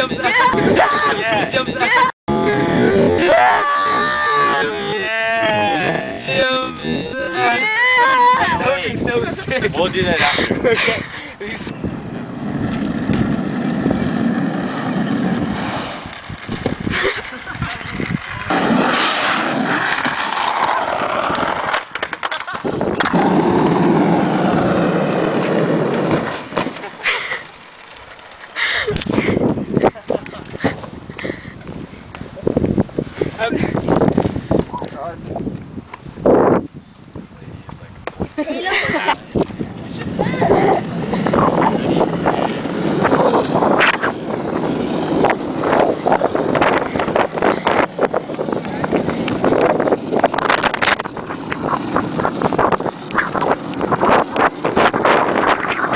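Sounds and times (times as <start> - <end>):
wind buffeting microphone: 0.0 - 21.8, 22.5 - 26.3, 28.6 - 55.9
skateboard wheels rolling on asphalt: 0.0 - 55.9
skateboard clacks: 14.6 - 27.0.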